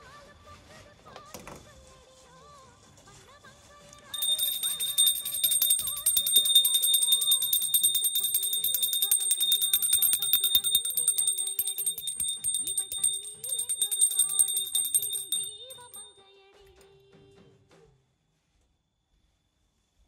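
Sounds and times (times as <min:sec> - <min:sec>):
brass hand bell ringing rapidly: 0:04.2 - 0:16.1.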